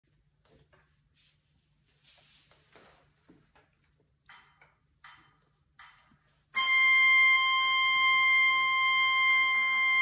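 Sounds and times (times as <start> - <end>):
mouth organ held chord: 6.6 - 10.0.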